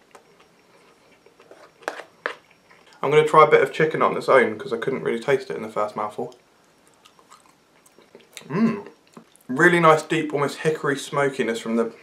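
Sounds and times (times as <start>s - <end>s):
person chewing food: 0.0s - 3.0s, 6.6s - 9.5s.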